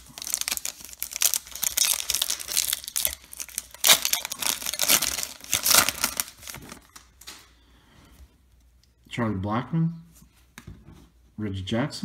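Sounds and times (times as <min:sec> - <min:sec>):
foil wrapper crinkling and tearing: 0:00.0 - 0:07.4.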